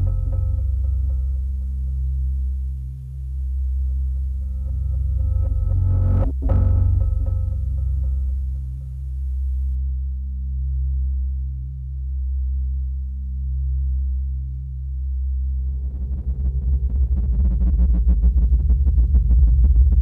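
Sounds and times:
low synthesizer drone: 0.0 - 20.0.

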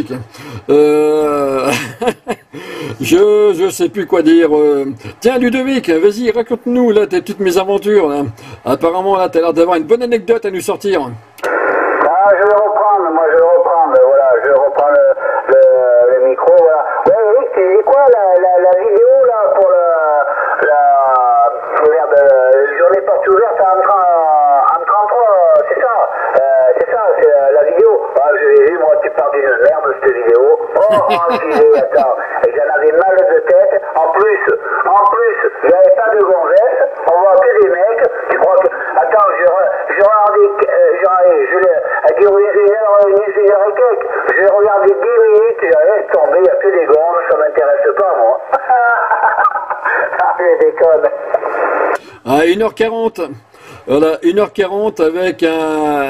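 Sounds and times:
radio crackle: 11.4 - 52.2
tinny radio voice talking: 30.8 - 32.6.

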